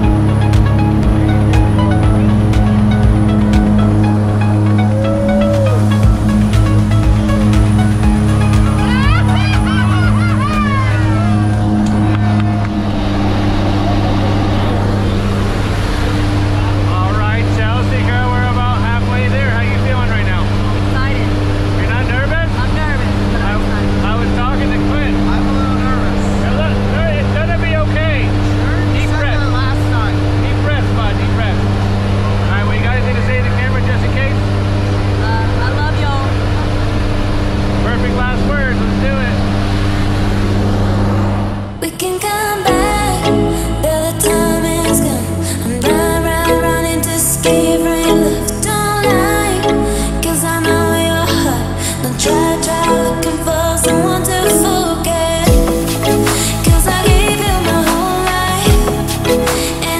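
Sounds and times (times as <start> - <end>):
plane engines droning: 0.0 - 59.9
unclear passenger voices: 4.8 - 6.0, 8.8 - 59.9.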